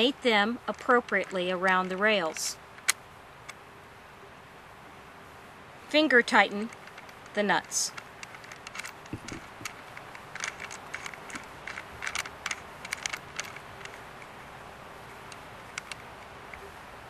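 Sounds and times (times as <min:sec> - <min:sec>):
metallic clicks of nuts turning: 0:00.0 - 0:03.6, 0:06.3 - 0:14.5, 0:15.1 - 0:16.7.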